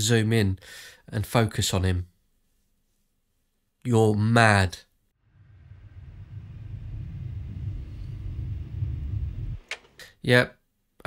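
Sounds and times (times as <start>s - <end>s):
low rumbling drone: 5.2s - 10.0s.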